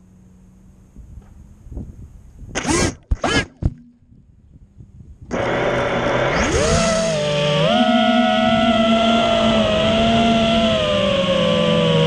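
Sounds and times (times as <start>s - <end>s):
quadcopter motors whining: 2.5s - 3.6s, 5.3s - 12.0s.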